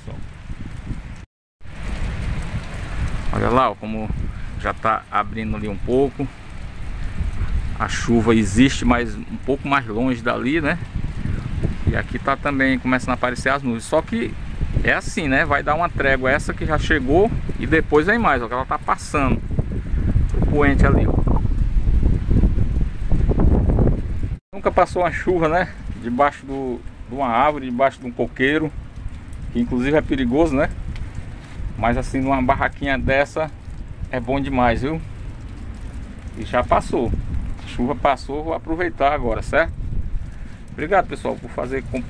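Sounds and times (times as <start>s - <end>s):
steady rain falling: 0.0s - 42.0s
wind buffeting microphone: 0.0s - 42.0s
low rumble: 14.2s - 42.0s.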